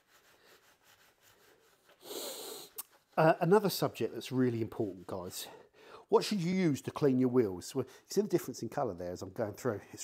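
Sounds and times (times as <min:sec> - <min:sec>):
man inhaling: 0:02.0 - 0:02.8, 0:05.6 - 0:06.1.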